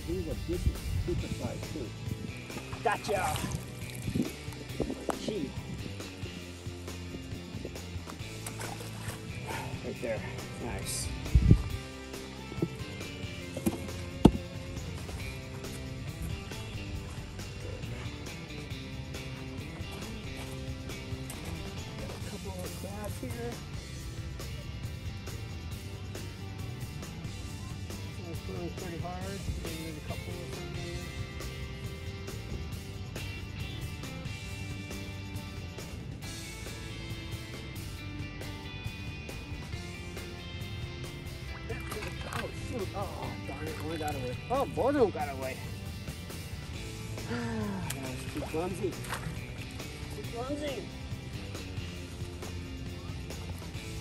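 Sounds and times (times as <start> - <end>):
background music with beat: 0.0 - 54.0.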